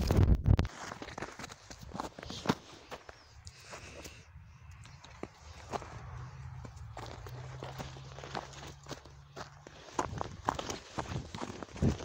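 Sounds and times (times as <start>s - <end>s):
footsteps in snow: 0.6s - 4.1s, 5.0s - 12.0s.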